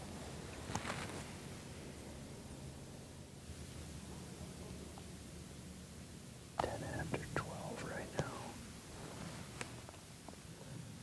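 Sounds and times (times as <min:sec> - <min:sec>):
person whispering: 0:06.6 - 0:08.6.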